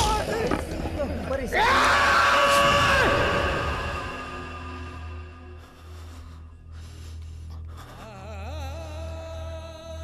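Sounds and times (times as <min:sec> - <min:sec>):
film score music: 0:00.0 - 0:10.0
low drone: 0:02.6 - 0:10.0.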